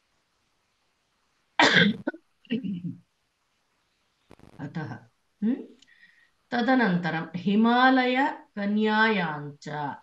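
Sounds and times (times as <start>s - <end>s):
person clearing throat: 1.6s - 2.2s
person coughing: 1.6s - 2.2s.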